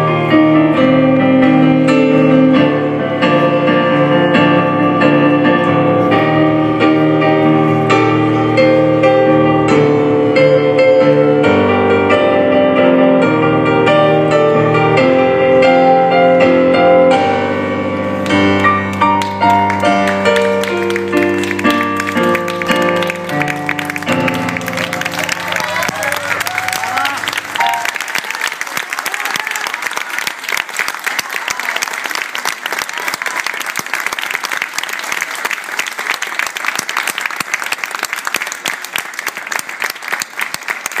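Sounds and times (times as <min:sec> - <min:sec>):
digital piano chords: 0:00.0 - 0:28.2
audience applauding: 0:18.2 - 0:41.0.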